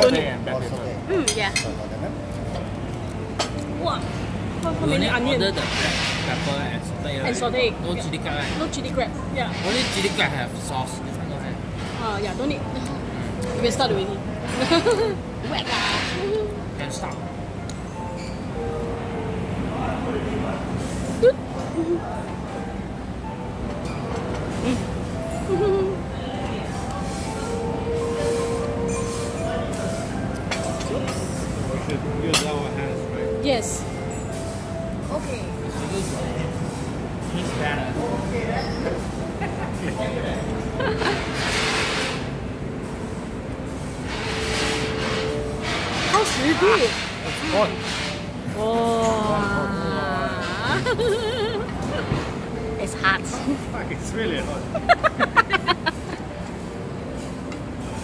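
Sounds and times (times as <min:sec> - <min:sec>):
restaurant background rumble: 0:00.0 - 0:58.0
tableware clink: 0:01.2 - 0:01.8, 0:28.4 - 0:32.7.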